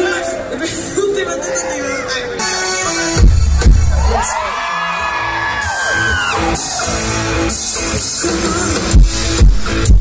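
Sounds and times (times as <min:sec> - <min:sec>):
crowd shouting back: 0:00.0 - 0:08.9.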